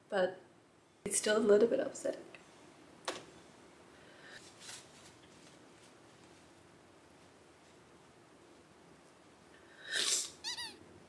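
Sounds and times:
bird squawk: 10.4s - 10.8s.

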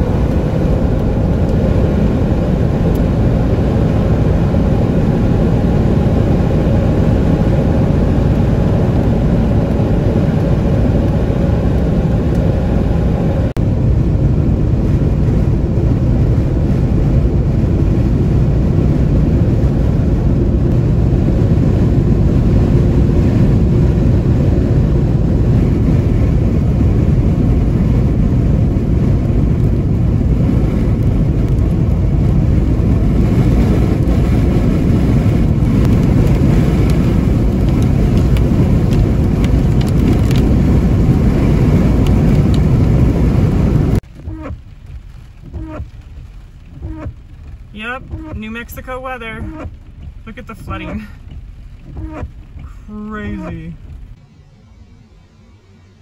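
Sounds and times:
road and engine noise inside car: 0.0s - 56.0s.

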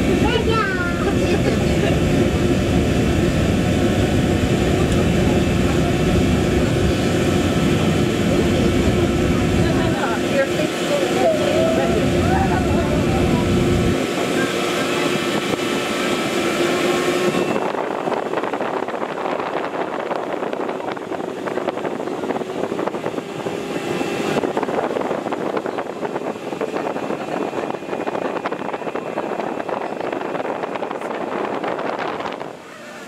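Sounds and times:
deep rumble: 0.0s - 32.6s
machinery noise: 0.0s - 33.0s.

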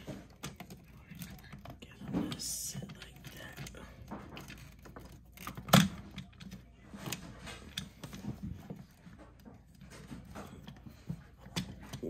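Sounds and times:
plastic toy knocks and clicks: 0.0s - 10.8s.

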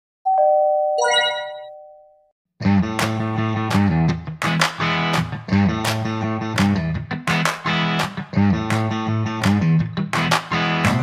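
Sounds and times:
two-tone ding-dong chime: 0.3s - 2.2s
sparkling shimmer of high notes: 1.0s - 1.7s.

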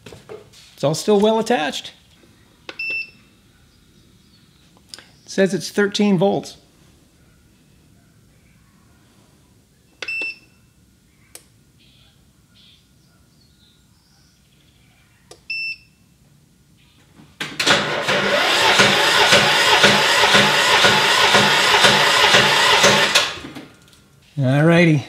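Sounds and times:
starter cranking engine: 17.6s - 23.6s.

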